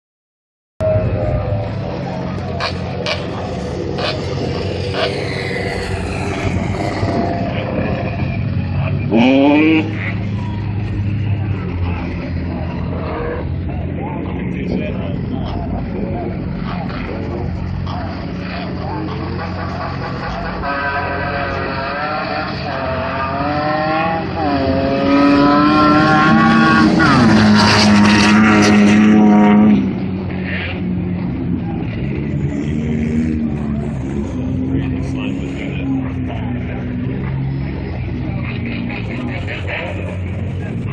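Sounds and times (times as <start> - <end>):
engines idling: 0.8 - 29.0, 29.8 - 40.9.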